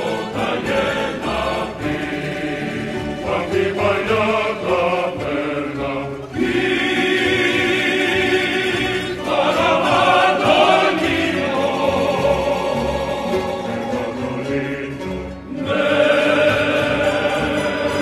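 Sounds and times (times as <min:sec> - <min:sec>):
group singing in harmony: 0:00.0 - 0:18.0.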